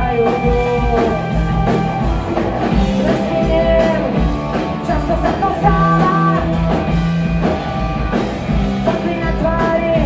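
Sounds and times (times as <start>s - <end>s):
drum kit: 0.0s - 10.0s
electric guitars: 0.0s - 10.0s
woman singing: 3.0s - 6.6s.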